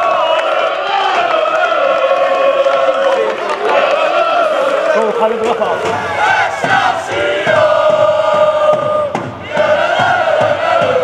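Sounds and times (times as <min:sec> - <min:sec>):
crowd chanting: 0:00.0 - 0:11.0.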